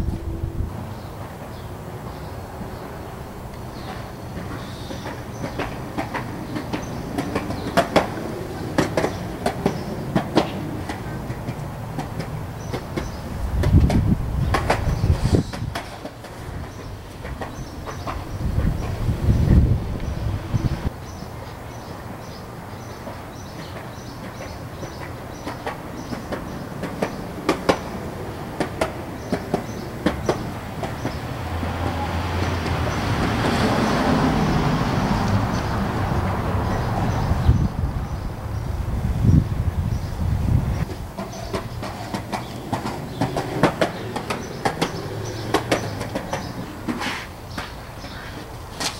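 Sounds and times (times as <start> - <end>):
skateboard wheels rumbling: 0.0 - 48.9
skateboard clacks: 3.5 - 37.1, 40.8 - 48.9.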